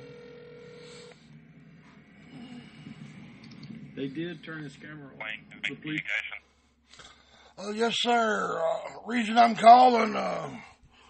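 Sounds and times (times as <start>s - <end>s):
telephone line tone: 0.0s - 4.0s.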